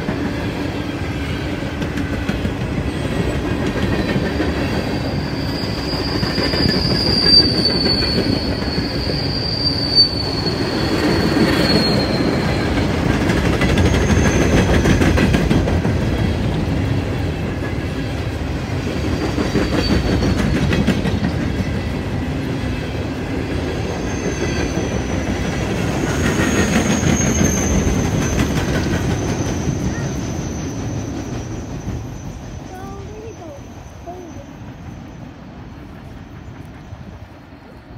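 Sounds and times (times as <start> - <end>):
train wheels rumbling on rail: 0.0 - 37.9
high wheel squeal: 2.9 - 13.0, 13.6 - 15.0, 19.0 - 21.5, 23.8 - 35.2.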